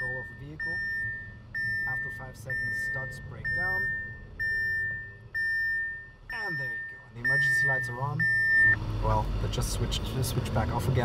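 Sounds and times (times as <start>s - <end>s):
high electronic warning beeps: 0.0s - 8.8s.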